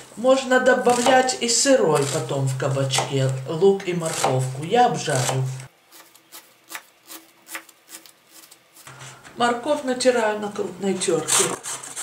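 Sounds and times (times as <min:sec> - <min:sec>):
knife dicing onion on board: 0:00.9 - 0:01.3, 0:04.0 - 0:08.5.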